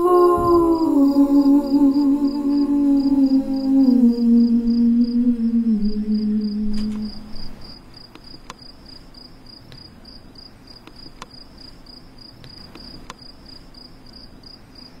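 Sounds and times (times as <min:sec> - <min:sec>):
cricket chirping: 0:00.0 - 0:15.0
faint clicks: 0:06.7 - 0:07.2.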